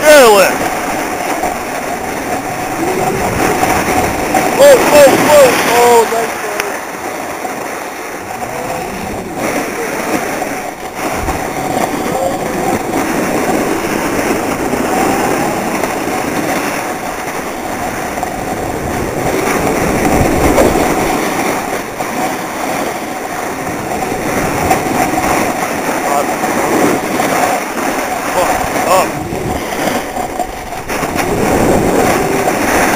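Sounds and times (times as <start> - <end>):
skis scraping over snow: 0.0 - 32.9.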